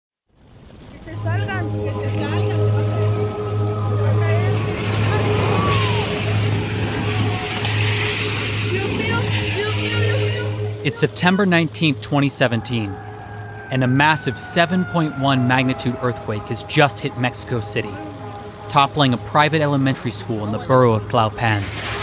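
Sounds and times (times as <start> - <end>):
traffic noise: 0.3 - 22.0
low steady hum: 0.4 - 22.0
faint voices: 0.9 - 21.8
person speaking: 10.8 - 13.0, 13.7 - 21.7.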